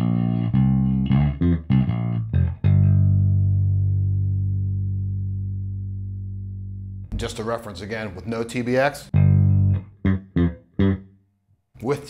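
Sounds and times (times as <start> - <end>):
plucked bass guitar notes: 0.0 - 7.9, 9.0 - 11.2.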